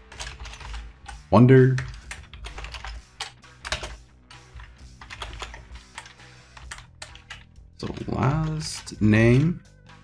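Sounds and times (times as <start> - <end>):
typing on computer keyboard: 0.0 - 4.0, 4.6 - 9.5
soft background music: 0.0 - 10.0.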